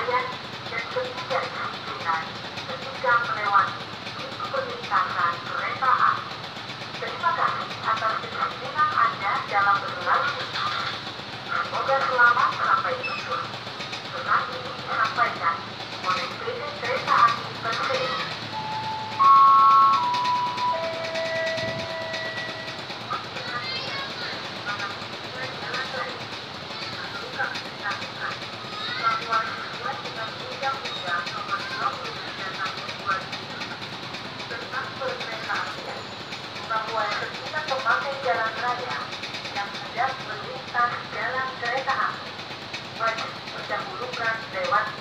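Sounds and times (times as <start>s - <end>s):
traffic noise: 0.0s - 45.0s
electronic chime melody: 18.6s - 22.7s
loudspeaker announcement voice: 18.6s - 23.7s.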